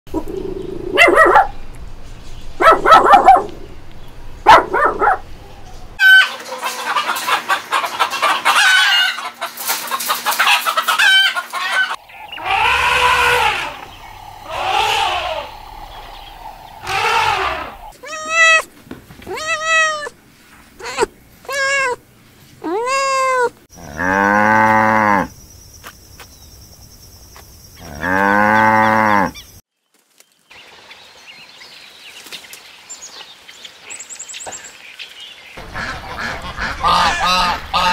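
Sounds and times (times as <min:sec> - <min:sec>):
puppy yapping: 0:00.9 - 0:01.6, 0:02.6 - 0:03.6, 0:04.5 - 0:05.2
long loud animal calls: 0:11.8 - 0:18.7
kitten mewing: 0:16.8 - 0:18.7, 0:19.3 - 0:20.1, 0:20.8 - 0:22.0, 0:22.6 - 0:23.6.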